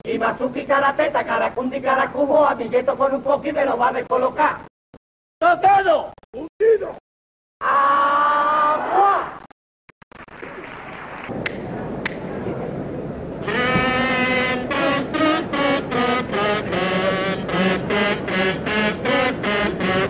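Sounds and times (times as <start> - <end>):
crowd noise: 10.4 - 20.0
kazoos playing melody: 13.4 - 20.0.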